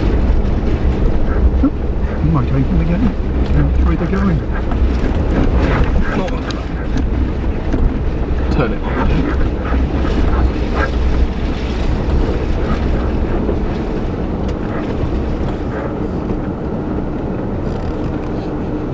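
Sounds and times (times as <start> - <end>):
knocks and rattles: 0.0 - 16.5
car rumbling at low speed: 0.0 - 18.9.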